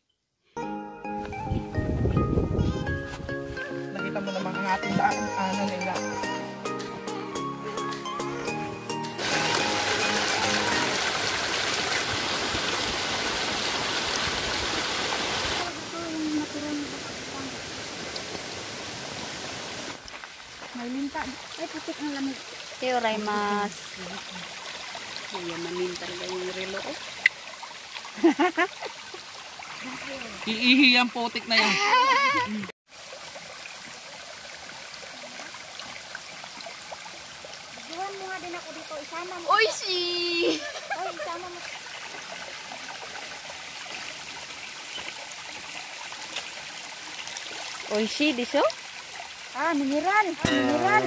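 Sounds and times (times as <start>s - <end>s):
stream cascading over rocks: 4.0s - 51.0s.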